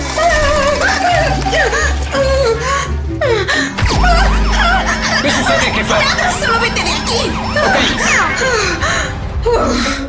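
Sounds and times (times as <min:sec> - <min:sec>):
steady bass notes: 0:03.8 - 0:09.4
wavering melody: 0:03.8 - 0:09.6.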